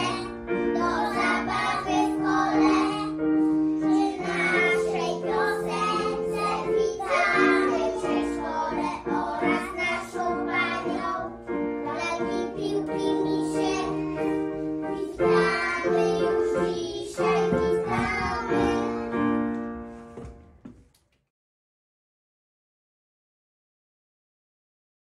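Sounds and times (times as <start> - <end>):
children singing together: 0.0 - 19.5.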